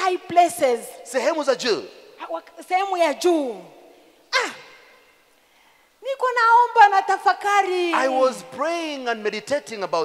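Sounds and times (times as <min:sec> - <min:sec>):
woman's sharp exclamation: 0:03.5 - 0:05.1, 0:07.7 - 0:08.4.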